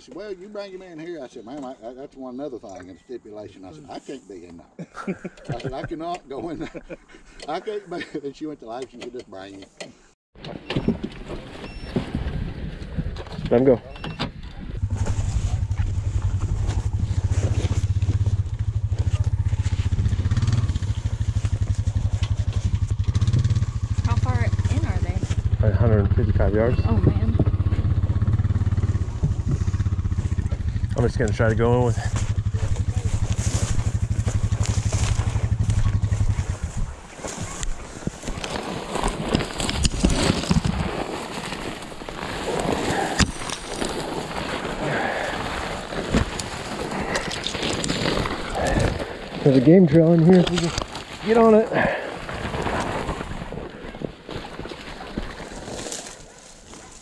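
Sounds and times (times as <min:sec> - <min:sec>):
footsteps through dry grass: 0:14.8 - 0:25.6, 0:31.9 - 0:57.0
utility vehicle engine idling: 0:14.8 - 0:36.5
twigs snapping: 0:33.2 - 0:36.3, 0:37.2 - 0:49.4, 0:54.3 - 0:57.0.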